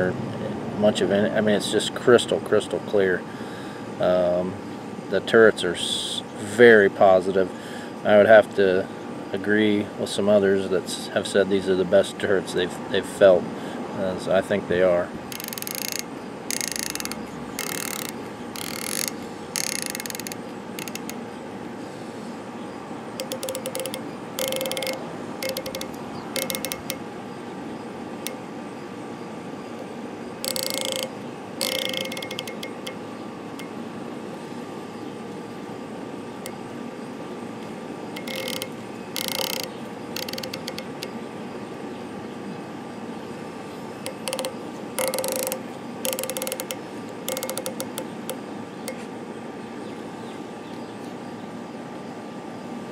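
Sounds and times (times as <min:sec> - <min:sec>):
riflescope turret detent clicks: 0:15.3 - 0:21.2, 0:23.2 - 0:27.0, 0:29.8 - 0:33.8, 0:38.2 - 0:41.2, 0:44.0 - 0:49.1.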